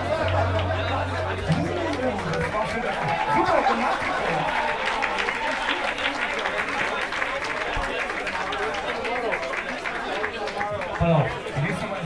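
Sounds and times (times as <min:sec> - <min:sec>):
double bass and guitar low note: 0:00.0 - 0:02.8
audience chatter: 0:00.0 - 0:12.0.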